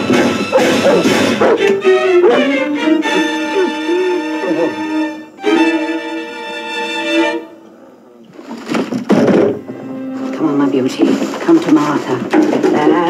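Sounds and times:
violins playing held notes: 0.0 - 7.8, 9.6 - 10.7.

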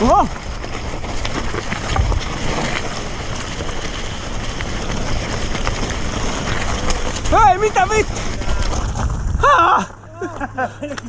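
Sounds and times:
bike rattling clicks: 0.0 - 9.4
wind rushing over microphone: 0.0 - 9.8
tyres rolling over gravel: 0.0 - 11.0.

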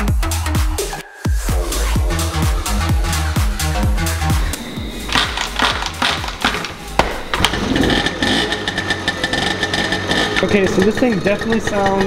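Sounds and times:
electronic dance music: 0.6 - 8.6
moped engine idling: 2.1 - 12.0.

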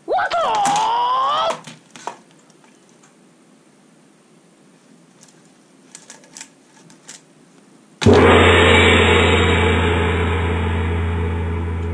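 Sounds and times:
gong-like hit ringing: 8.0 - 11.9.

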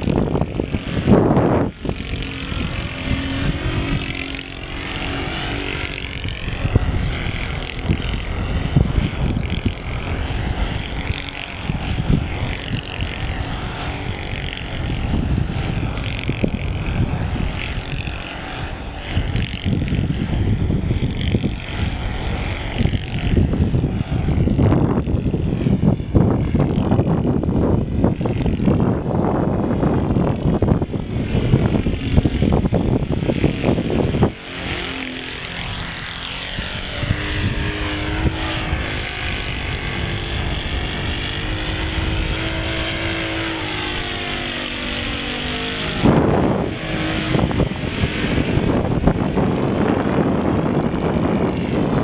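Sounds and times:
distant model plane engine drone: 0.0 - 52.0
wind buffeting microphone: 0.0 - 52.0.

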